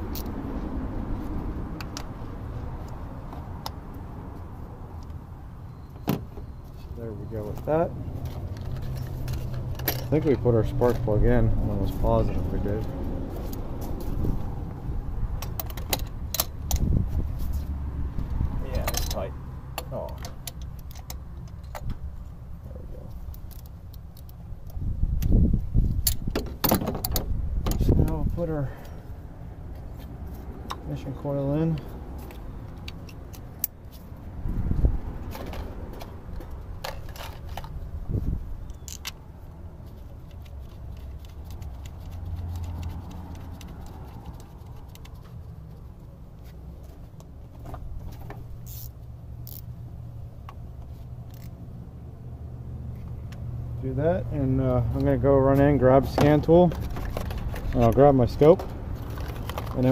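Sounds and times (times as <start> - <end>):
plastic connectors clicking and rattling: 40.2 - 45.3, 56.7 - 59.9.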